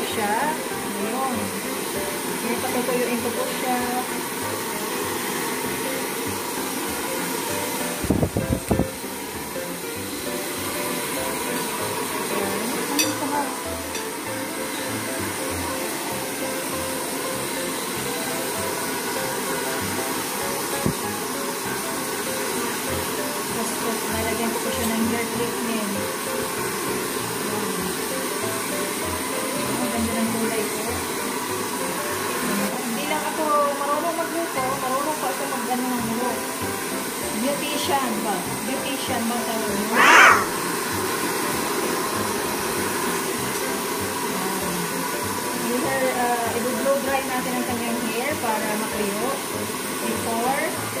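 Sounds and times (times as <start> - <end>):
background music: 0.0 - 41.1
hair dryer running: 0.0 - 51.0.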